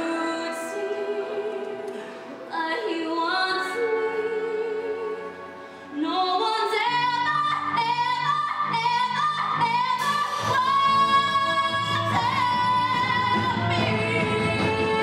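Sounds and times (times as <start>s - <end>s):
woman singing: 0.0s - 15.0s
bass line: 7.3s - 15.0s
band accompaniment: 10.0s - 15.0s.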